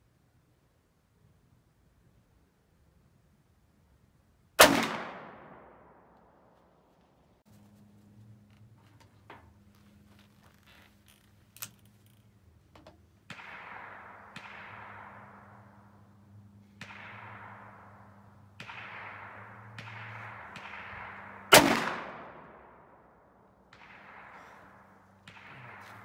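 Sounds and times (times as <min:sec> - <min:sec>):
loud revolver shot with echo: 0:04.6 - 0:05.9, 0:16.8 - 0:22.8
faint distant gunshots echoing: 0:04.6 - 0:07.5, 0:12.8 - 0:26.0.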